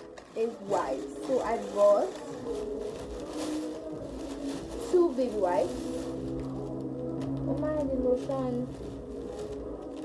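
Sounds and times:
plastic bag rustling: 0:00.0 - 0:10.0.

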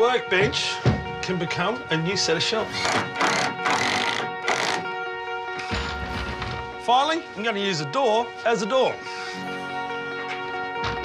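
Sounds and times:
background music: 0:00.0 - 0:11.0
cordless drill driving screw: 0:02.7 - 0:04.9.

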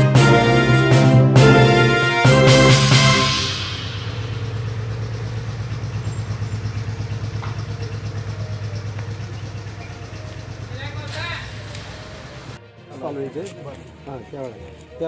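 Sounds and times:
vehicle engine idling: 0:02.4 - 0:12.6
voice: 0:10.7 - 0:11.6.

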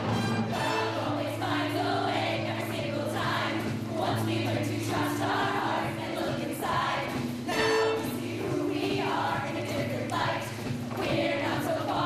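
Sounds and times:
women's choir singing: 0:00.6 - 0:12.0.

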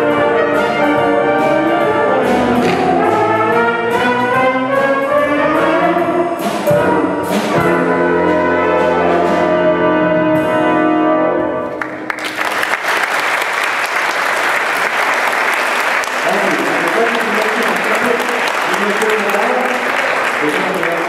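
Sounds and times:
jazz band held chord: 0:00.0 - 0:12.2
audience applause: 0:11.7 - 0:21.0
voices among clapping: 0:12.1 - 0:21.0.

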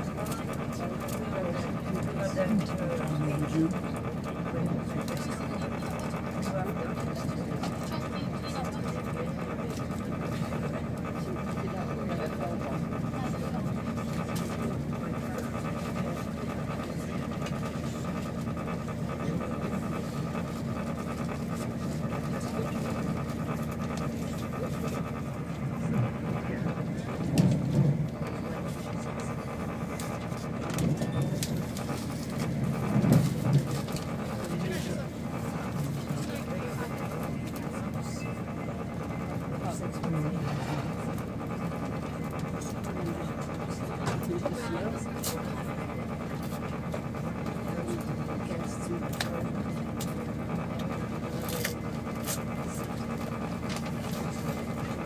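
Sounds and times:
train rumble inside carriage: 0:00.0 - 0:55.0.

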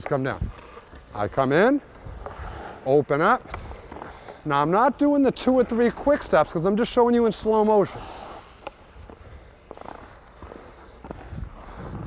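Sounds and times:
low steady rink rumble: 0:00.1 - 0:12.0
skate blades scraping on ice: 0:00.1 - 0:12.0.

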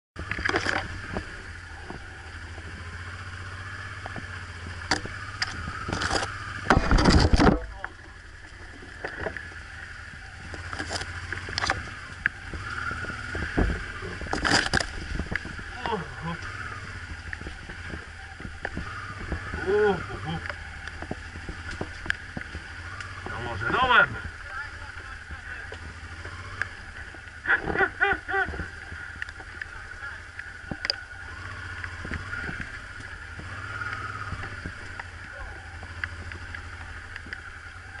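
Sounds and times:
knocks and scrapes on motorcycle: 0:00.2 - 0:09.7, 0:10.4 - 0:24.4, 0:25.6 - 0:38.0
branches brushing motorcycle: 0:00.2 - 0:38.0
motorcycle engine running: 0:00.2 - 0:38.0.

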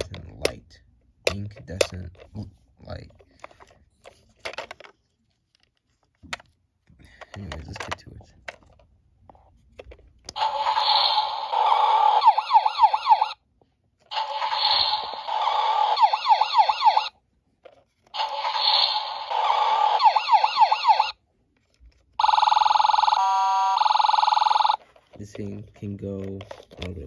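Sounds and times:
toy fire truck siren: 0:10.4 - 0:13.4, 0:14.2 - 0:17.1, 0:18.2 - 0:21.2, 0:22.2 - 0:24.8.

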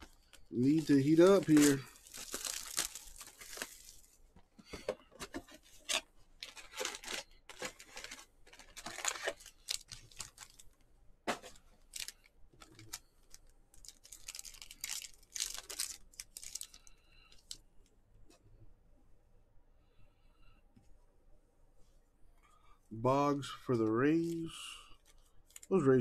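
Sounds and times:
card wrappers tearing and crinkling: 0:00.1 - 0:04.2, 0:05.2 - 0:10.7, 0:11.4 - 0:17.6, 0:24.2 - 0:25.9.

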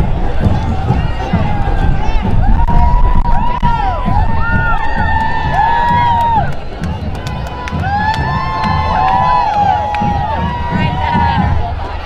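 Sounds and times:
crowd cheering and whooping: 0:00.0 - 0:12.0
scattered clapping: 0:00.0 - 0:12.0.

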